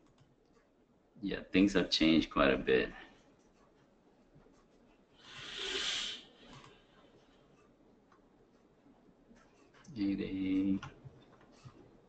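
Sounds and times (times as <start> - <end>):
soft hiss-like rustle: 3.0 - 7.4.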